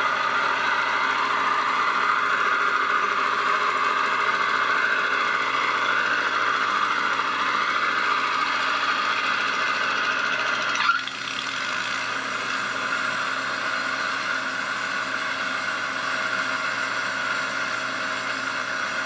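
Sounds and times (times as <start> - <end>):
sawmill engine running: 0.0 - 19.0.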